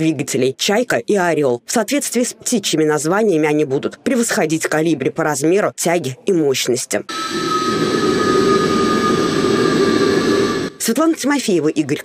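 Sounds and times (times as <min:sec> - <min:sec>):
jet engine rush: 0:07.1 - 0:10.9
high turbine whine: 0:07.1 - 0:11.4.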